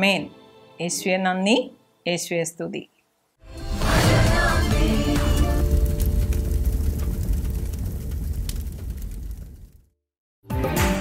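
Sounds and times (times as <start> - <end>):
rumbling fire whoosh effect: 3.6 - 10.0.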